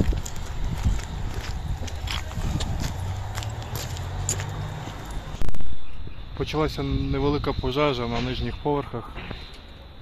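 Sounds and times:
footsteps crunching over rubble: 0:00.0 - 0:05.4.

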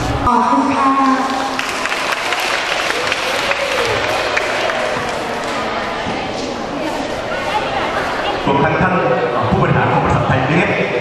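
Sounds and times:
audience clapping: 0:00.9 - 0:05.9
faint voices: 0:02.5 - 0:11.0.

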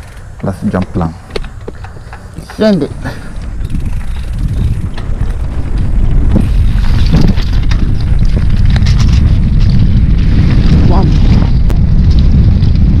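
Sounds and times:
bike rattling clicks: 0:00.0 - 0:13.0
bike tyres rumbling: 0:00.0 - 0:13.0
wind buffeting microphone: 0:00.0 - 0:13.0.

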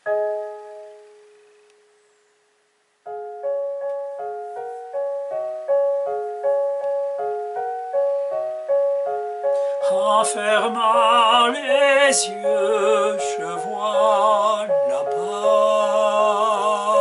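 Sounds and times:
piano broken-chord accompaniment: 0:00.0 - 0:17.0
piano chords: 0:00.0 - 0:17.0.

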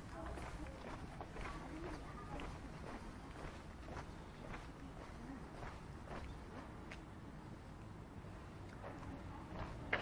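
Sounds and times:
faint indistinct voices: 0:00.0 - 0:07.6, 0:08.2 - 0:10.0
footsteps on pavement: 0:00.0 - 0:10.0.

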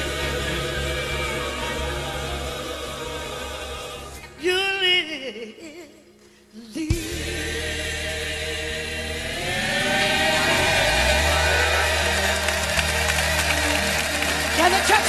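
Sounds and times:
choir singing: 0:00.0 - 0:04.6, 0:06.8 - 0:15.0.

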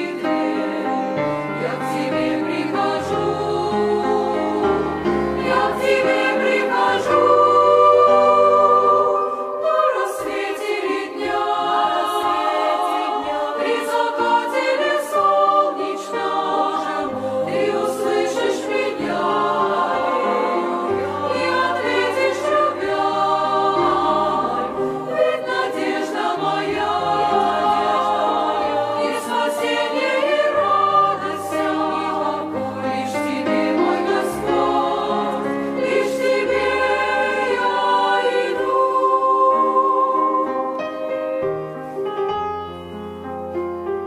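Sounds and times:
choir singing a hymn: 0:00.0 - 0:43.2
piano accompaniment: 0:00.0 - 0:44.0.

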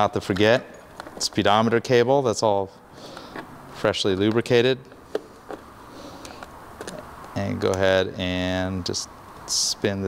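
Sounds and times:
faint clicks and taps of handling parts: 0:04.2 - 0:07.8.

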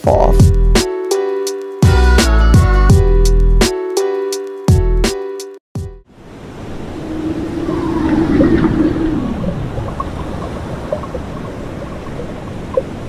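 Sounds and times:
rushing ocean-like wash: 0:06.1 - 0:13.0
low gliding tone: 0:06.4 - 0:12.2.

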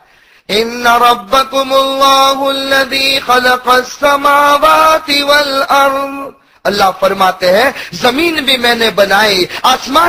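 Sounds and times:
man chanting melodic recitation: 0:00.5 - 0:10.0.

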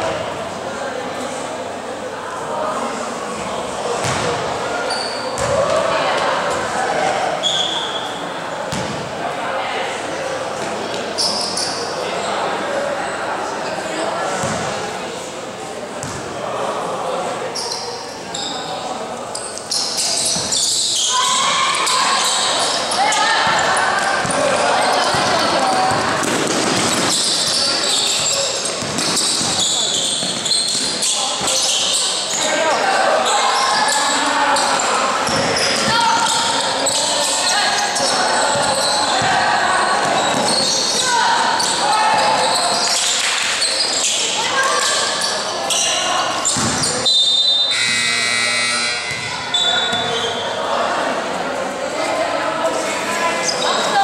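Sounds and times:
voices calling and shouting: 0:00.0 - 0:54.0
basketball bouncing on court: 0:04.0 - 0:04.4, 0:05.4 - 0:05.7, 0:08.7 - 0:09.0, 0:14.4 - 0:14.7, 0:16.0 - 0:16.2, 0:23.4 - 0:27.6, 0:28.8 - 0:30.5, 0:38.5 - 0:39.4, 0:46.5 - 0:47.0, 0:49.1 - 0:50.2.

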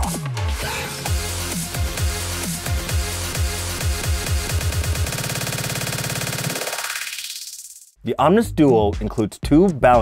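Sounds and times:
electronic dance music stutter loop: 0:00.0 - 0:08.0.

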